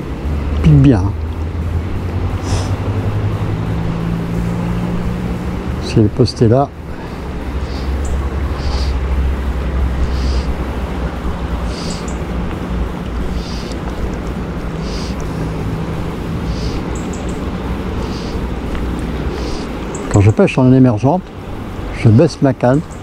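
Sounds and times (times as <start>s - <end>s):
low hum and heavy rumble: 0.0s - 23.0s.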